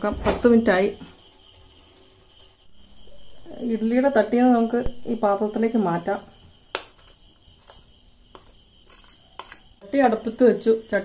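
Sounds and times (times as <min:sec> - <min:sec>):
high-pitched whine: 0:00.0 - 0:10.5
spoon clicking on steel plate: 0:06.7 - 0:09.9.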